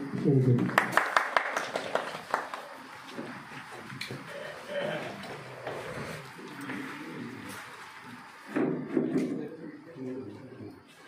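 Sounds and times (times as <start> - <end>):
people clapping: 0.0 - 8.5.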